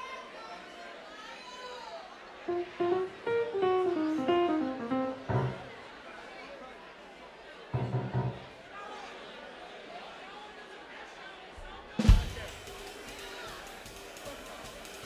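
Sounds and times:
crowd chatter: 0.0s - 15.0s
electric guitar notes: 2.5s - 5.8s.

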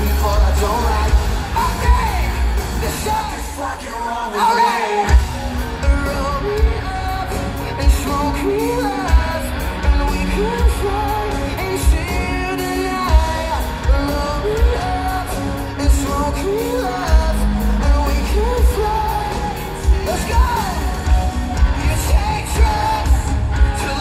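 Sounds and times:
live pop-punk band playing: 0.0s - 24.0s
person singing: 0.0s - 24.0s.

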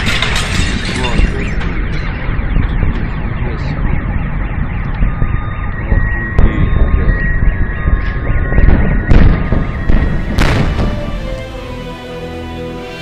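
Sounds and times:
heavy low rumble: 0.0s - 13.0s
sharp crack: 10.4s - 11.2s.

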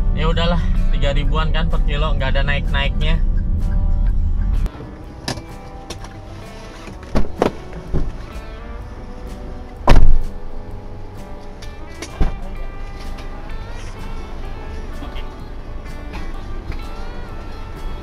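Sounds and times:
background music: 0.0s - 18.0s
loud thump of car hatch: 7.1s - 8.2s, 9.8s - 10.3s.

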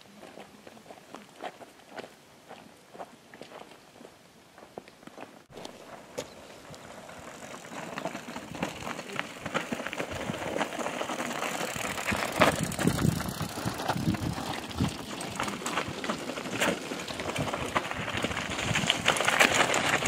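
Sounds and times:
bike rattling: 5.5s - 20.0s
bike tyres crunching over scree: 5.5s - 20.0s.

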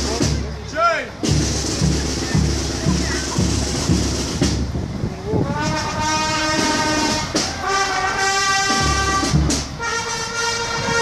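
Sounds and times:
drum beat thudding: 0.0s - 5.0s, 6.5s - 7.7s, 8.6s - 9.8s
train horn blast: 5.4s - 11.0s.

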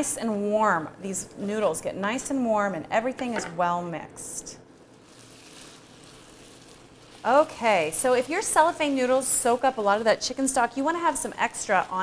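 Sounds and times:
food hissing in a pan: 4.9s - 12.0s.

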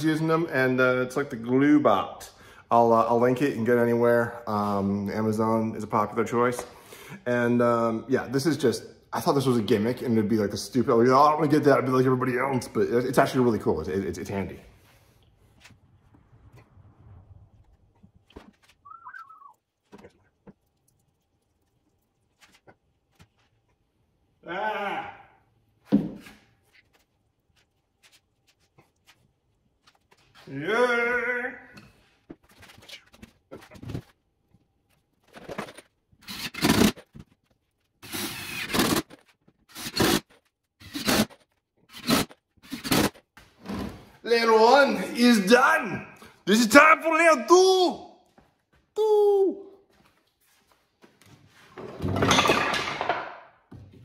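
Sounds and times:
short warbling chirp: 18.8s - 19.6s
man's voice: 44.3s - 48.1s.

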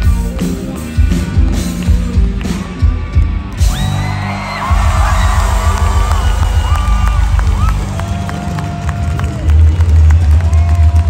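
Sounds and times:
rock band sustained chords: 0.0s - 11.0s
crowd cheering and whistling: 2.5s - 11.0s.

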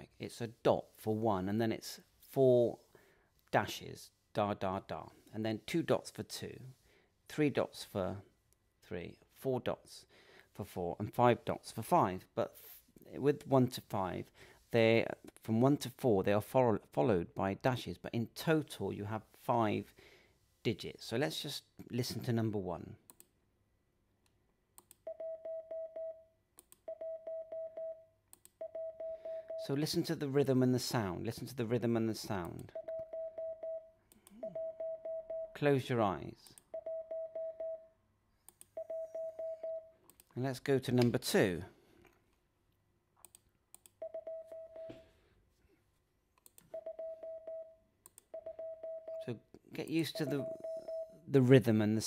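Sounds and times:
morse code beeps: 28.6s - 29.7s, 32.8s - 35.6s, 36.7s - 37.9s, 38.8s - 39.9s, 44.0s - 45.0s, 46.7s - 49.3s, 50.1s - 51.2s.

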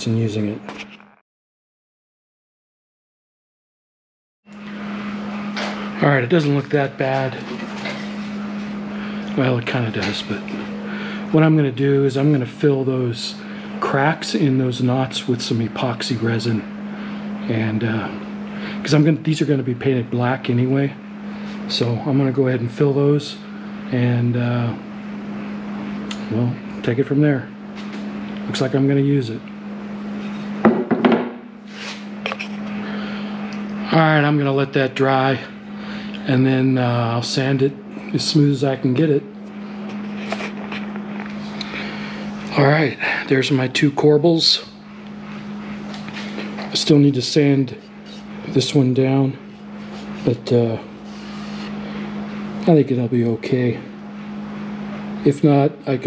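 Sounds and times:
steady low hum: 0.0s - 1.2s, 4.5s - 56.0s
wooden knocks: 30.7s - 31.4s.

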